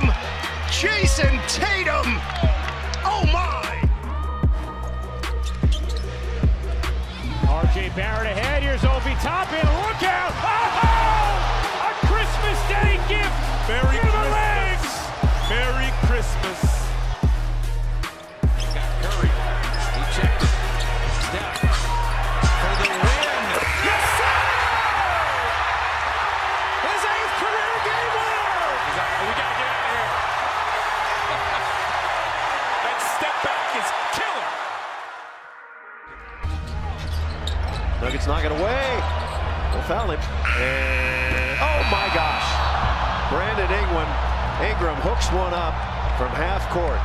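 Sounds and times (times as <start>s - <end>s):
crowd cheering loudly: 0.0s - 5.3s, 7.0s - 47.0s
arena crowd noise: 0.0s - 35.6s, 36.2s - 47.0s
music with thudding bass beat: 2.4s - 9.8s, 10.8s - 23.2s.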